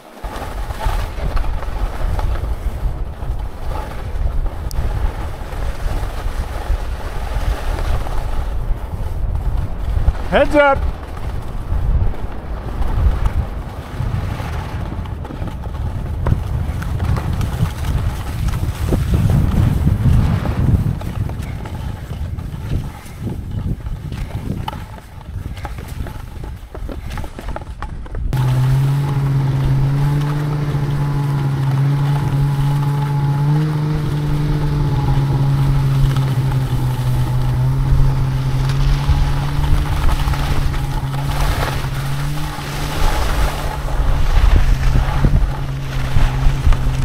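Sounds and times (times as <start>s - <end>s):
skis sliding on snow: 0.0s - 47.0s
wind buffeting microphone: 0.0s - 47.0s
clicks and clatters: 20.7s - 29.2s.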